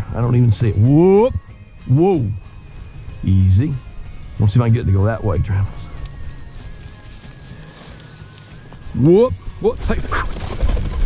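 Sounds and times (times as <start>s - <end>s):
footsteps through dry grass: 5.4s - 11.0s.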